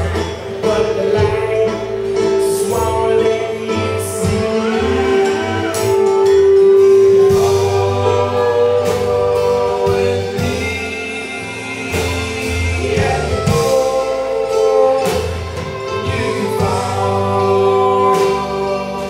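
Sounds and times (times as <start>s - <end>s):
acoustic guitar: 0.0s - 19.0s
person singing: 0.0s - 19.0s
upright bass: 0.0s - 19.0s.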